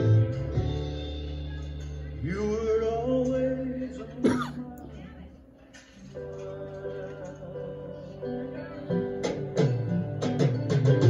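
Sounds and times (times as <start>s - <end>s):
music: 0.0s - 11.0s
person coughing: 4.2s - 4.7s.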